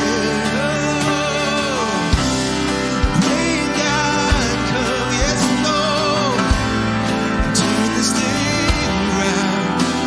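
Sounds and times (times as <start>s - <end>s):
person singing: 0.0s - 10.0s
worship band playing: 0.0s - 10.0s.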